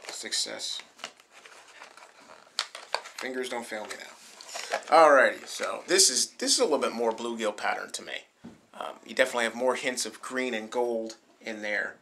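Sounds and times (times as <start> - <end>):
plastic blister pack crinkling: 0.0 - 5.8.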